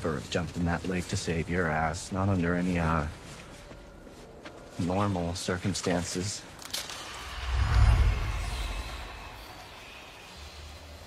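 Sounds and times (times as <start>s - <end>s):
low drone: 6.6s - 11.0s
deep low rumble: 7.0s - 9.8s.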